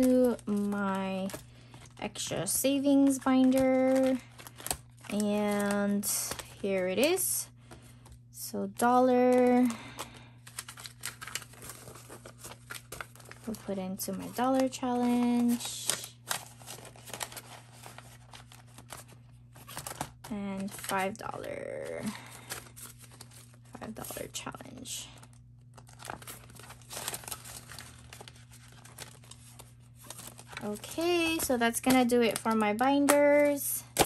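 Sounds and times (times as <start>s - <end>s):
paper bills crinkling: 0.0s - 8.2s, 9.2s - 24.2s, 25.2s - 34.0s
steady low hum: 0.0s - 34.0s.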